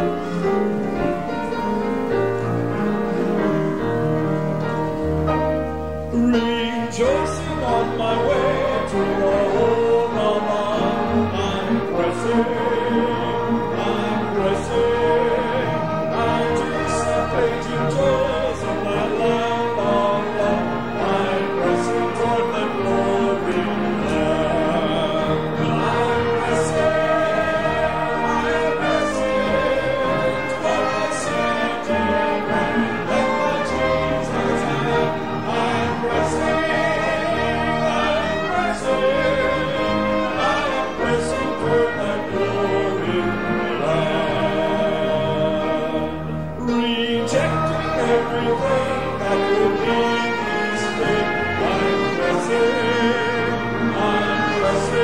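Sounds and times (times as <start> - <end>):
congregation singing a hymn: 0.0 - 55.0
instrumental accompaniment: 0.0 - 55.0
saxophone: 0.0 - 55.0
trumpet: 0.0 - 55.0.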